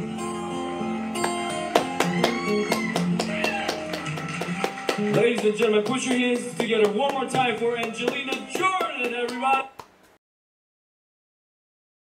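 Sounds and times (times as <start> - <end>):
guitar plucked and strummed: 0.0 - 8.6.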